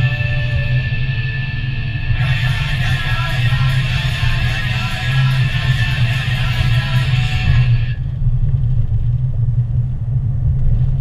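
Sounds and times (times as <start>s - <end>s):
guitar music: 0.0s - 8.0s.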